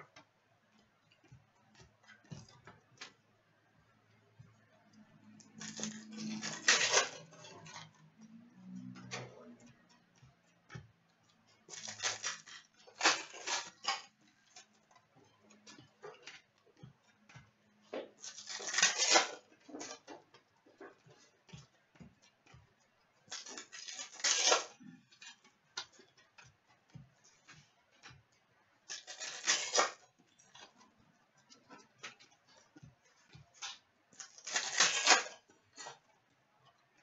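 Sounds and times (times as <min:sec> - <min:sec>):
wrappers crinkling and tearing: 0:05.6 - 0:07.2, 0:11.7 - 0:14.1, 0:18.2 - 0:19.9, 0:23.3 - 0:24.8, 0:28.9 - 0:30.0, 0:33.6 - 0:35.4.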